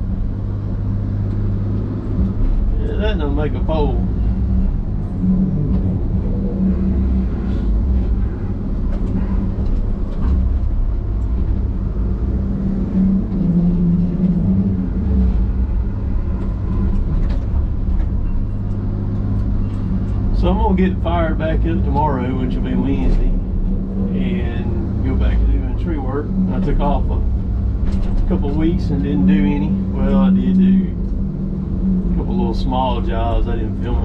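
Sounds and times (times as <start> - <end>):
diesel engine and hydraulics: 0.0 - 34.0.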